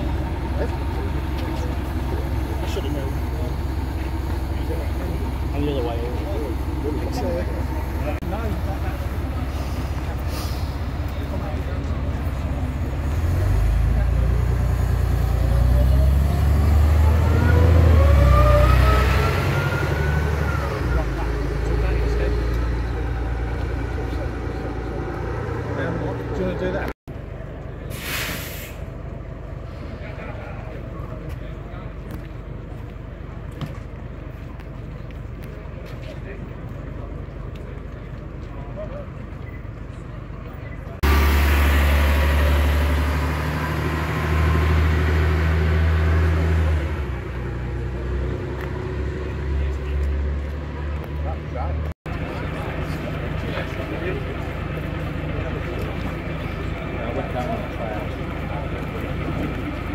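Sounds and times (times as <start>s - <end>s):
bus engine rumbling: 0.0s - 59.9s
air brake hiss: 9.5s - 10.9s, 27.9s - 28.9s
engine whine rising in pitch: 11.4s - 26.9s, 41.0s - 51.2s.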